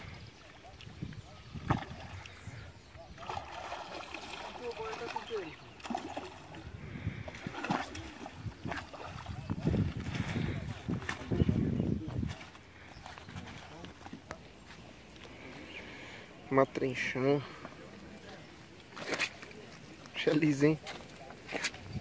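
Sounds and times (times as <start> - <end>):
water splashing and sloshing: 0.0 - 22.0.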